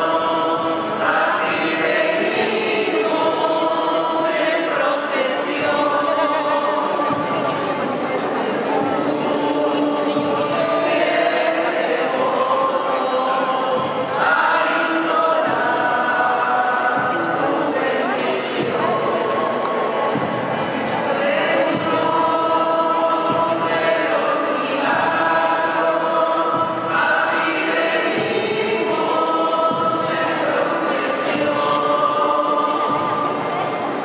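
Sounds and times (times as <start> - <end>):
crowd singing religious song: 0.0 - 34.0.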